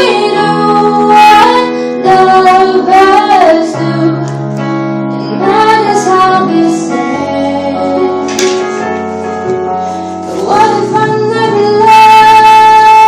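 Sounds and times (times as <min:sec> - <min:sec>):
girl singing into a microphone: 0:00.0 - 0:08.4, 0:10.2 - 0:13.0.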